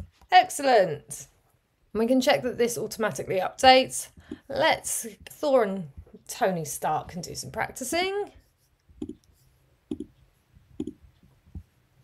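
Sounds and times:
computer mouse clicks: 0:10.8 - 0:11.7.

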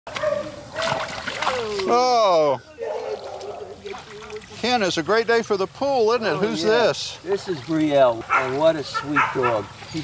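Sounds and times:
water splashing in a wading pool: 0:00.1 - 0:10.0.

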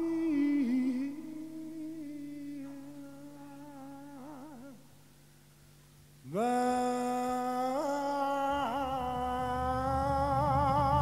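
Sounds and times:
person singing long low note: 0:00.0 - 0:04.8, 0:06.3 - 0:11.0.

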